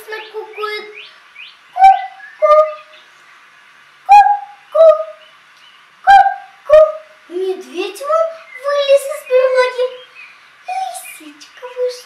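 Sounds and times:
girl imitating a cuckoo call: 1.8 - 2.9, 4.1 - 5.2, 6.0 - 10.0, 10.7 - 12.0.

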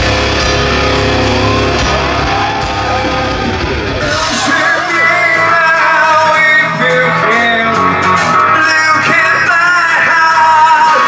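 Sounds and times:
electric guitar: 0.0 - 11.0
rock band playing live: 0.0 - 11.0
man singing: 4.0 - 11.0.

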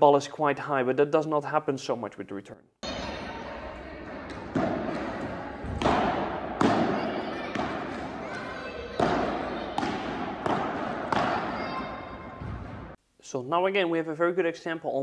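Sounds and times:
paddle strikes and ball bounces: 4.3 - 12.9.

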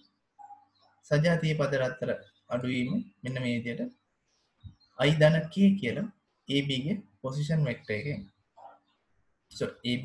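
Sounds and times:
man speaking: 1.1 - 3.9, 5.0 - 8.3, 9.6 - 10.0.

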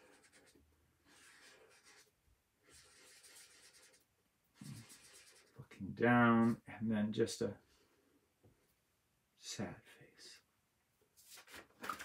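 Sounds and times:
marker scratching on paper: 0.0 - 5.6.

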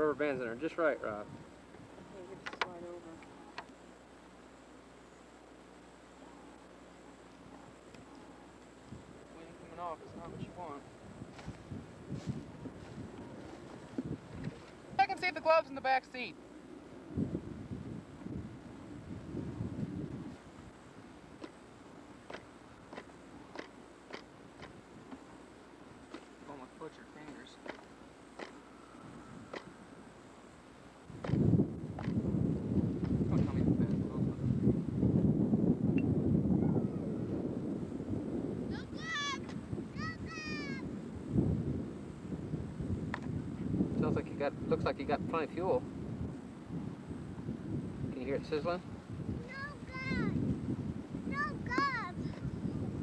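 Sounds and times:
wind buffeting microphone: 8.3 - 30.2, 30.9 - 53.0.

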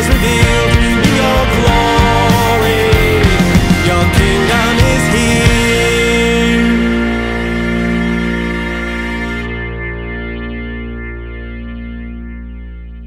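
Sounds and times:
band final chord ringing: 0.0 - 13.0
guitar through effects: 0.0 - 13.0.

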